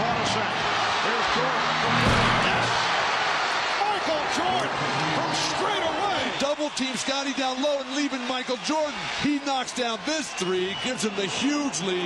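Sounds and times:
arena crowd cheering: 0.0s - 12.0s
music: 1.2s - 3.2s.

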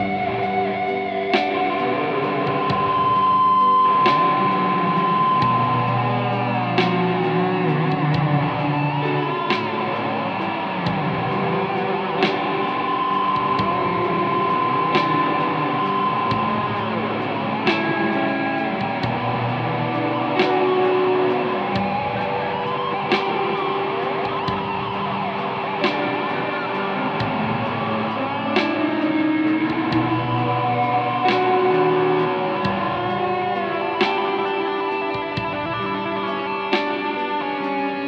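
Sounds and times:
electric guitar lead with echo: 0.0s - 38.0s.

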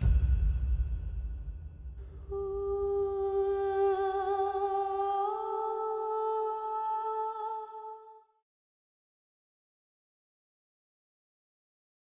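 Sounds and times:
person humming long notes: 2.2s - 8.2s.

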